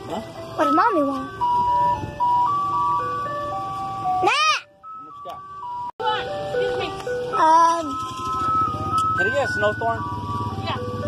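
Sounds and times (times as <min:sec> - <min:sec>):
ice cream truck chime music: 0:00.0 - 0:11.0.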